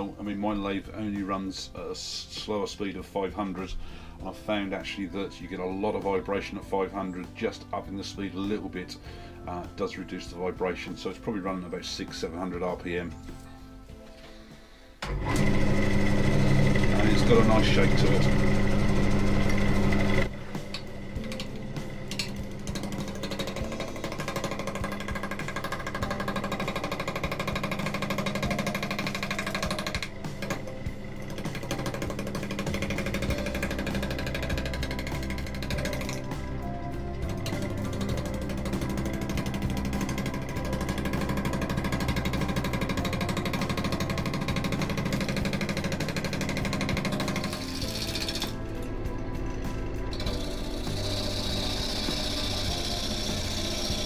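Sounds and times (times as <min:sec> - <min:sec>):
instrumental background music: 0:00.0 - 0:54.0
wood lathe spinning: 0:15.0 - 0:54.0
gouge cutting wood: 0:15.3 - 0:22.0, 0:22.6 - 0:36.6, 0:37.6 - 0:48.6, 0:50.1 - 0:54.0.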